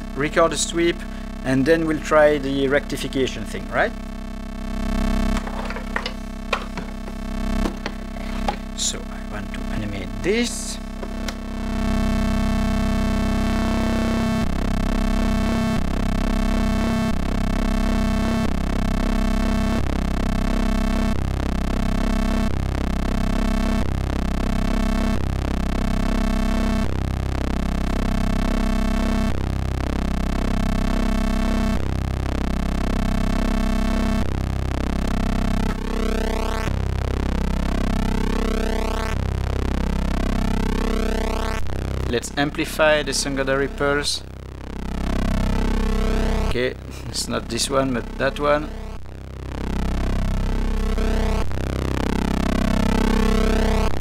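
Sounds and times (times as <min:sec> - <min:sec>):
synthesizer drone: 0:00.0 - 0:54.0.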